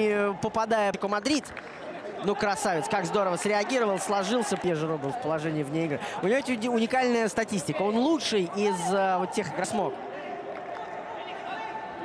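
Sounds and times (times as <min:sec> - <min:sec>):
football match broadcast din: 0:00.0 - 0:12.0.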